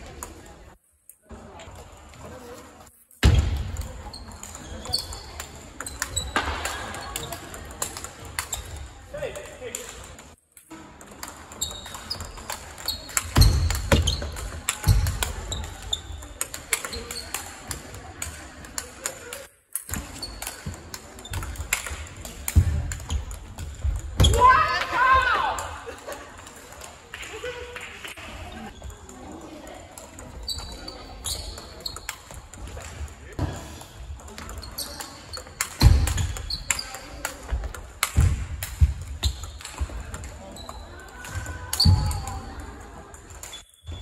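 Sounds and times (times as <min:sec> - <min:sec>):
chatter in a hall: 0:00.0 - 0:44.0.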